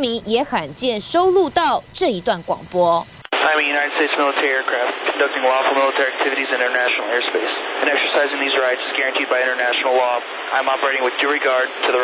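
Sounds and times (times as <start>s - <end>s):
voice over radio channel: 0.0s - 12.0s.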